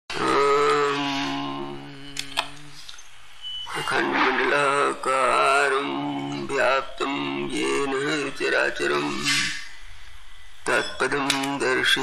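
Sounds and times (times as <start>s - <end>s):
man chanting om: 0.1s - 2.9s, 3.7s - 9.8s, 10.6s - 12.0s.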